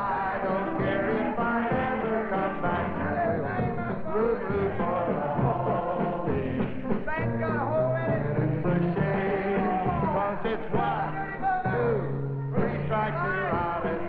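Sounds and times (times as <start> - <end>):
audience singing along: 0.0 - 7.2, 8.4 - 14.0
live country band music: 0.0 - 14.0.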